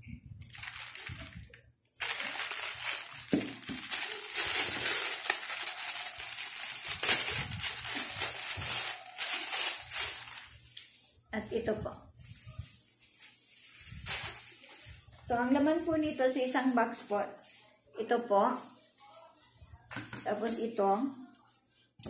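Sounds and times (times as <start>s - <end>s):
plastic bag crinkling: 0.4s - 11.0s, 12.3s - 15.1s.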